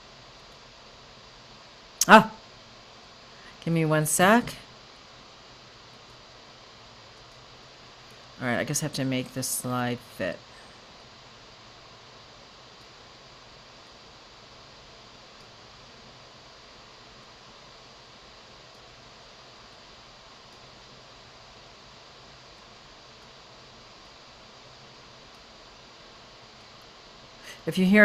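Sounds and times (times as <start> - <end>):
computer fan hissing: 0.0 - 28.0.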